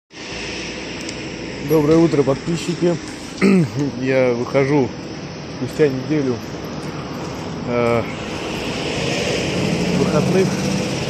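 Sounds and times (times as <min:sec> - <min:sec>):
traffic: 0:00.1 - 0:11.0
low engine hum: 0:00.2 - 0:11.0.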